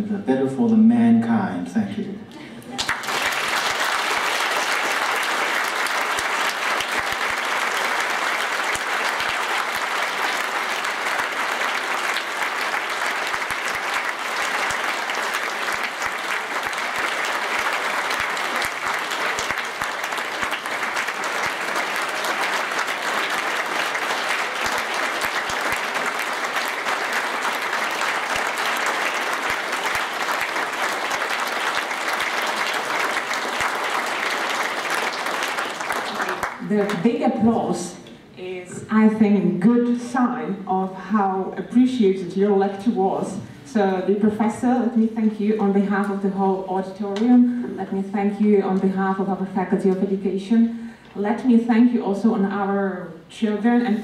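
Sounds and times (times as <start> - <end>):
audience applauding: 2.4 - 37.0.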